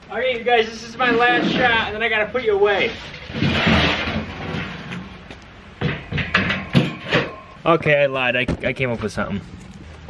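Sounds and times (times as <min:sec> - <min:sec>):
metal ramps scraping: 0:00.6 - 0:07.6.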